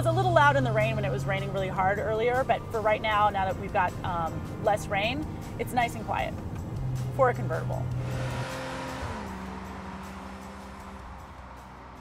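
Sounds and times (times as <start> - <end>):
sports car passing by: 0.0 - 12.0.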